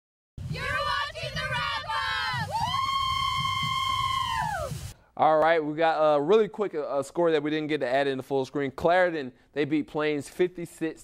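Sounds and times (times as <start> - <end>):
cheerleaders shouting and cheering: 0.4 - 4.9
long high whoop: 0.6 - 4.9.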